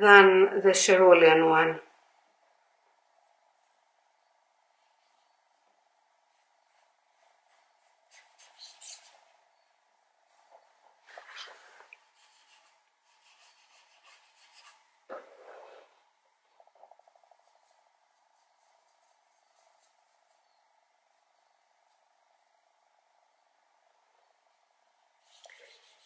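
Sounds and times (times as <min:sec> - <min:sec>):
paintbrush scratching on palette: 0:04.8 - 0:22.6, 0:25.2 - 0:26.0.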